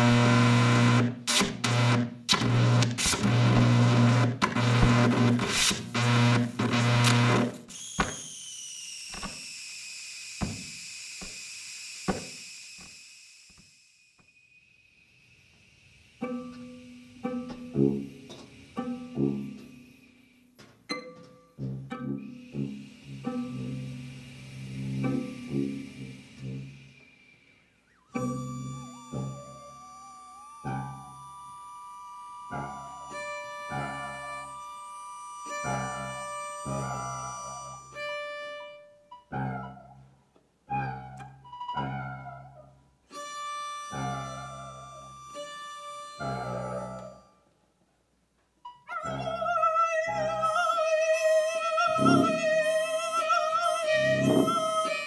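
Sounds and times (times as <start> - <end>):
violin: 20.7 - 26.8, 28.1 - 39.7, 43.1 - 47.3, 50.1 - 55.0
tuba: 21.6 - 26.9, 32.5 - 34.8, 35.5 - 37.9, 39.3 - 40.1, 40.7 - 42.8, 43.9 - 45.1, 46.2 - 47.3, 51.2 - 52.7, 53.8 - 55.0.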